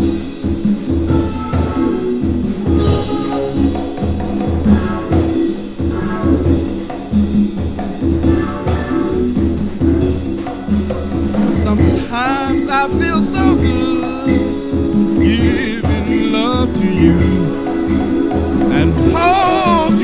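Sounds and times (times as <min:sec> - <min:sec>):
soul-jazz band groove: 0:00.0 - 0:20.0
person singing with vibrato: 0:11.6 - 0:17.8, 0:18.7 - 0:20.0.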